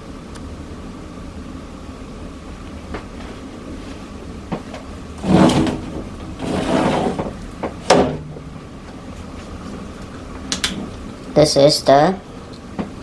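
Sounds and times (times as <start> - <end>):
low background hum: 0.0 - 13.0
window scraping open: 5.2 - 8.2.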